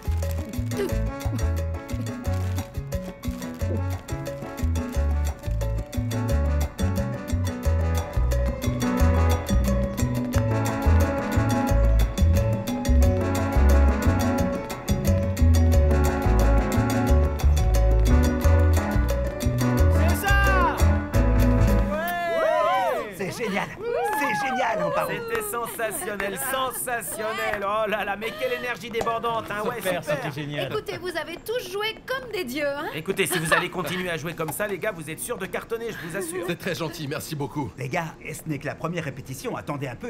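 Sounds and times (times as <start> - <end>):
salsa band playing: 0.0 - 23.0.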